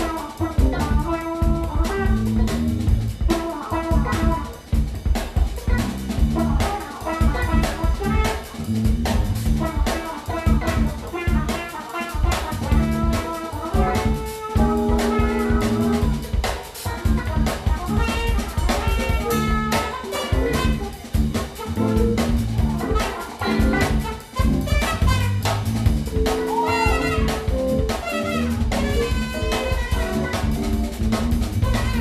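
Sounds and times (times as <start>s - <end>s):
saxophone: 0.0s - 4.7s, 5.7s - 8.8s, 9.6s - 32.0s
electric guitar: 0.0s - 5.8s, 6.4s - 9.2s, 9.8s - 16.2s, 16.8s - 32.0s
electric bass: 0.0s - 11.6s, 12.3s - 32.0s
drum kit beat: 0.0s - 32.0s
trumpet: 0.0s - 32.0s.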